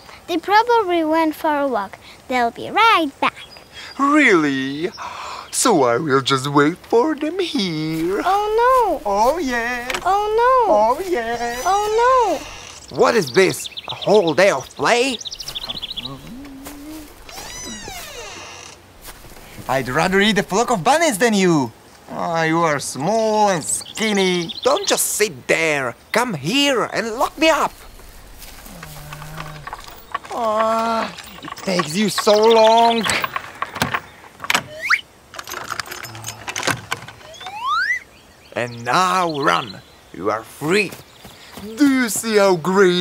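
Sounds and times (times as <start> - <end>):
wooden gate creaking: 7.8 - 13.1, 15.3 - 21.0, 27.0 - 38.0
high bird chirps: 8.0 - 20.9, 27.0 - 30.4, 34.7 - 35.1, 37.2 - 40.2
person humming: 16.0 - 18.4
metal chain rattling: 27.3 - 34.1, 35.3 - 37.2.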